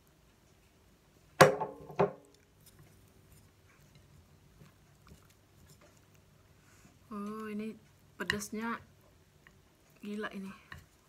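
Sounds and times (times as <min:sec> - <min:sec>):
faint chewing: 0:02.2 - 0:11.0.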